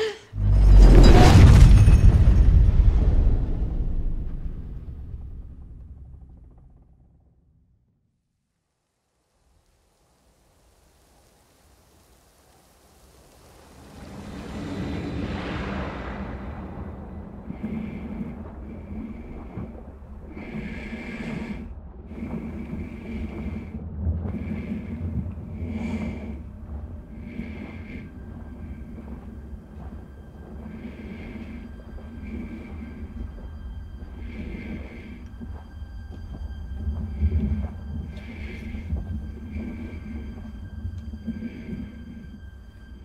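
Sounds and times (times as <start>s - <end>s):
heavy breathing through mask: 0.0s - 0.4s, 17.3s - 43.0s
low rumble: 0.3s - 8.0s, 13.5s - 43.0s.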